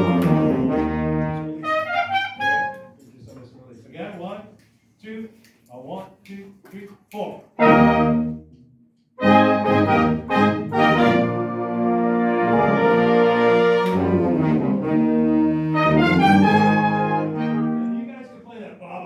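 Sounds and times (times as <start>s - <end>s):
marching band horns playing chords: 0.0s - 2.9s, 7.6s - 8.5s, 9.2s - 18.3s.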